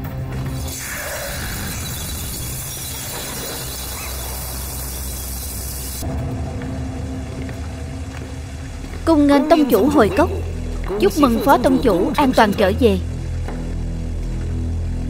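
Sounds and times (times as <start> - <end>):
low drone: 0.0 - 15.0
rumbling hissing noise: 0.5 - 8.5.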